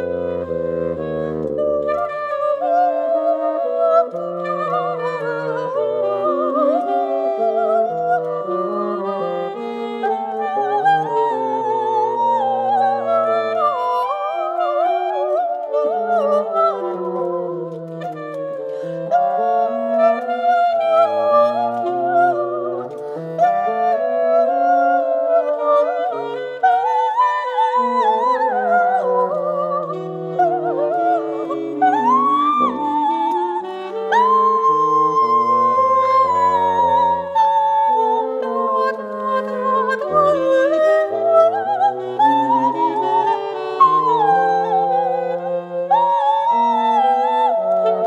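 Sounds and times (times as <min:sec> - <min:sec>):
alto saxophone held notes: 0:00.0 - 0:48.0
bassoon: 0:00.0 - 0:48.0.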